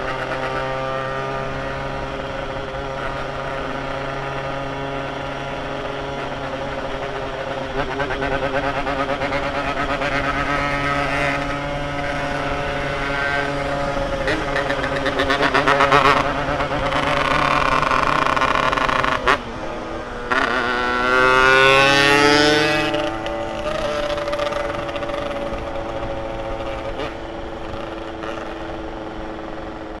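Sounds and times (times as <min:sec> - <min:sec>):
two-stroke motorcycle engine revving: 0:00.0 - 0:30.0.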